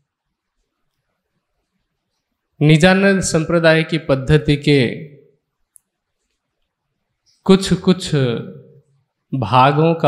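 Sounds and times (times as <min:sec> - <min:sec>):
man speaking: 0:02.6 - 0:05.3, 0:07.4 - 0:10.0.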